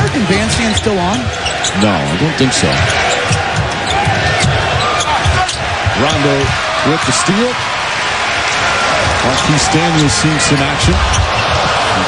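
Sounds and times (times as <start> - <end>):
arena crowd noise: 0.0 - 12.0
sneaker squeaks: 0.5 - 2.0, 2.6 - 6.2.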